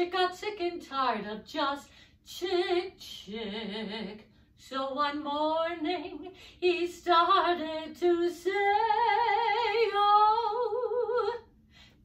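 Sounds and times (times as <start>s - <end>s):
woman singing with vibrato: 0.0s - 11.5s.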